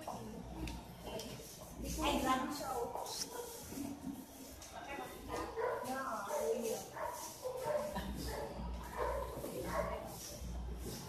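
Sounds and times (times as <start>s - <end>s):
people talking: 0.0s - 3.9s, 4.7s - 7.1s, 9.1s - 10.4s.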